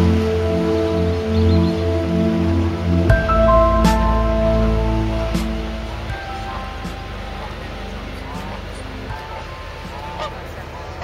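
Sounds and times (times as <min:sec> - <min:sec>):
outdoor background rush: 0:00.0 - 0:11.0
geese honking: 0:06.0 - 0:11.0.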